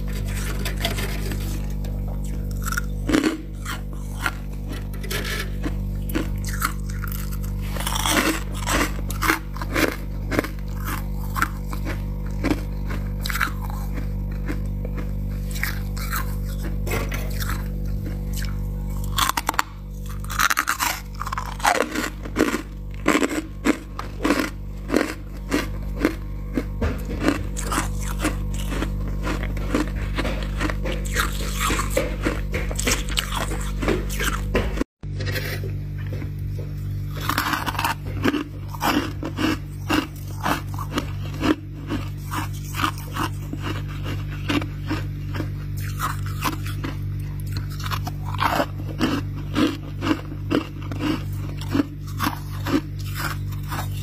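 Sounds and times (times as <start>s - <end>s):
frost crunching: 0.0s - 54.0s
steady low hum: 0.0s - 54.0s.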